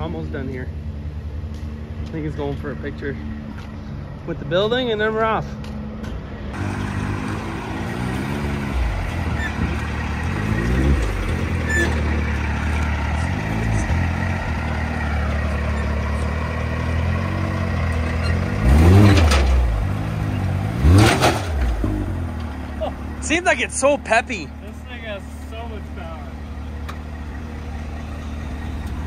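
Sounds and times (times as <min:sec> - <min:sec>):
engine running at low revs: 0:05.5 - 0:29.0
engine revving: 0:06.5 - 0:24.4.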